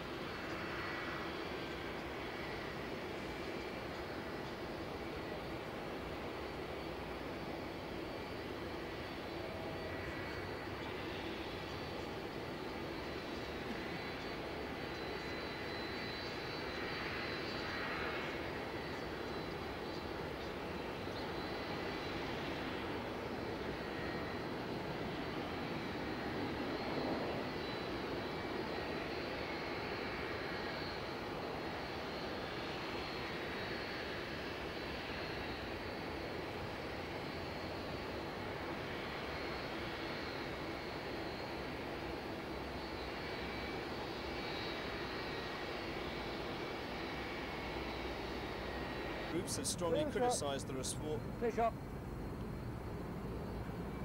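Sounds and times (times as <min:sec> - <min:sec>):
faint high engine whine: 0:00.0 - 0:54.0
jet engines rumbling: 0:00.0 - 0:54.0.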